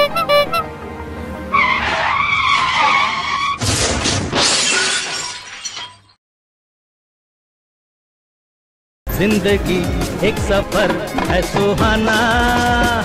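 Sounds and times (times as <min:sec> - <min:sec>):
car tyres screeching: 0:01.5 - 0:03.6
crash: 0:03.1 - 0:06.2
glass shattering: 0:03.6 - 0:06.2.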